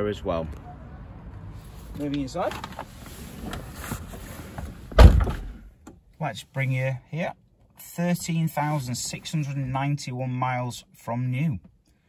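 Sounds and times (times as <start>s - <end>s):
rustling in a car seat: 1.6s - 5.3s
car door shutting: 4.6s - 5.7s.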